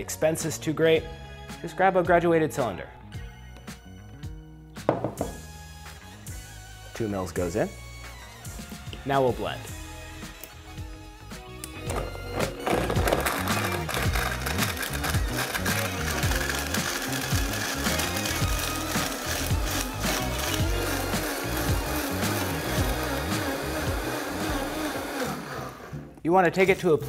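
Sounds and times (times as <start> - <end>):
countertop blender running: 11.9 - 26.0.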